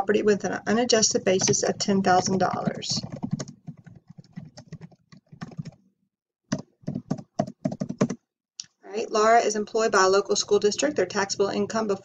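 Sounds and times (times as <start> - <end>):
typing on computer keyboard: 1.3 - 5.8, 6.5 - 8.2.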